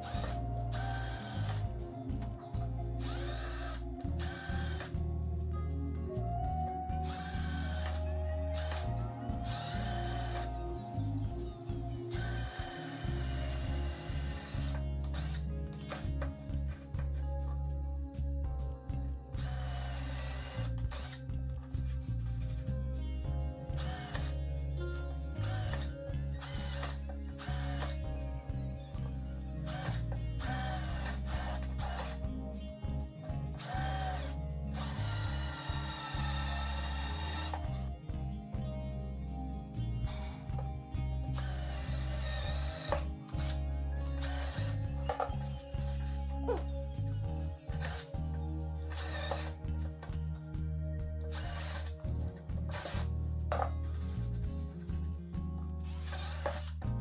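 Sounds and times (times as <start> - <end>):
cordless drill boring into wood: 0.0 - 1.9, 2.5 - 5.0, 7.0 - 11.4, 12.1 - 16.2, 19.4 - 21.3, 23.8 - 24.4, 25.4 - 28.0, 29.7 - 32.2, 33.5 - 37.8, 41.3 - 46.7, 47.6 - 48.2, 48.8 - 49.6, 51.3 - 52.0, 52.7 - 54.1, 55.9 - 56.8
background music: 0.0 - 57.0.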